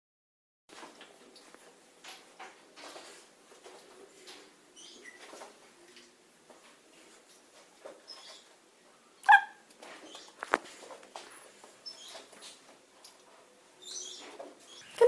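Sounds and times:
dog yipping: 0:09.2 - 0:09.6.

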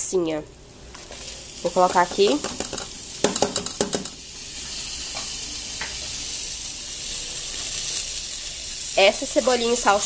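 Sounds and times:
rice sizzling in a pot: 0:00.8 - 0:10.0.

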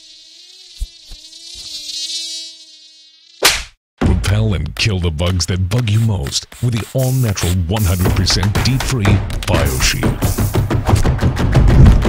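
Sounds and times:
mosquito buzzing: 0:00.0 - 0:03.5.

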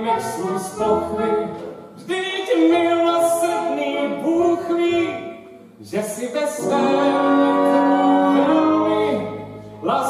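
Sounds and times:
actors singing sustained notes: 0:06.6 - 0:10.0.

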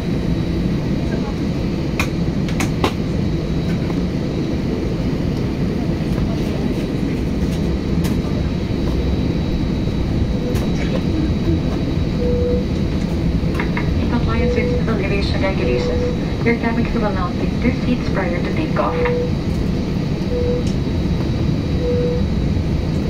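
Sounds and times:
jet engines low rumble: 0:00.0 - 0:23.0
faint high whine: 0:08.2 - 0:23.0
voices: 0:10.4 - 0:12.2, 0:13.6 - 0:19.4.

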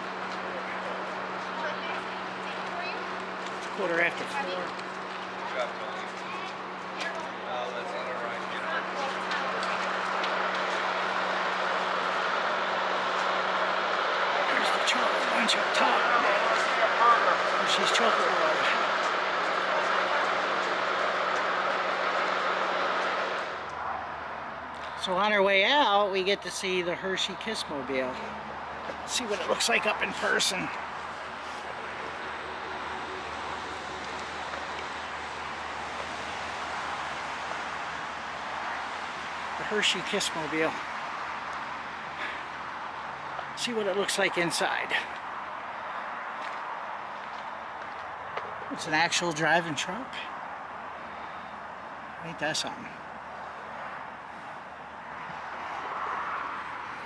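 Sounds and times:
road traffic: 0:00.0 - 0:57.0
faint voices: 0:13.9 - 0:22.6.

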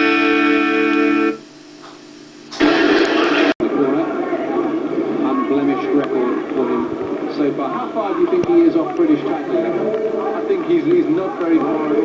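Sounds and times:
voices: 0:03.6 - 0:12.0.

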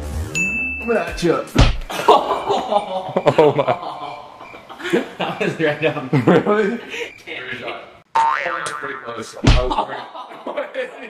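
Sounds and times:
voices: 0:01.1 - 0:11.0
heavy low thud: 0:01.6 - 0:01.9, 0:09.4 - 0:09.8
boing sound effect: 0:08.2 - 0:09.8.

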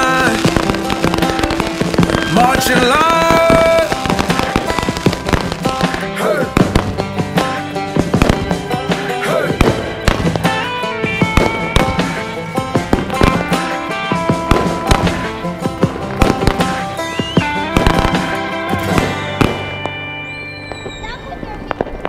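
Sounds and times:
music with singing: 0:00.0 - 0:19.9
fireworks bangs and crackles: 0:00.0 - 0:22.0.

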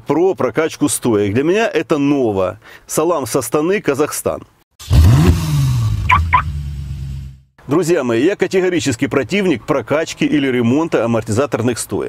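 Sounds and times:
car engine revving: 0:04.8 - 0:07.4
short high beeps: 0:06.1 - 0:06.5.

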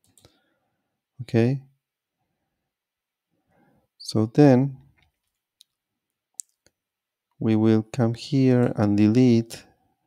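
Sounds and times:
computer mouse clicks: 0:00.0 - 0:00.4.

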